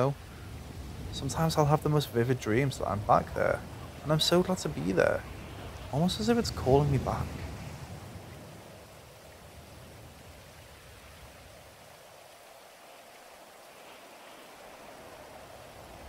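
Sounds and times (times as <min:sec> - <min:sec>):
faint steady rain: 0:00.0 - 0:16.0.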